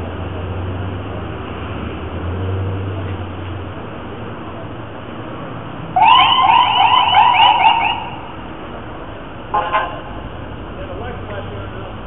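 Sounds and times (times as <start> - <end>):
siren yelping: 6.0 - 8.3.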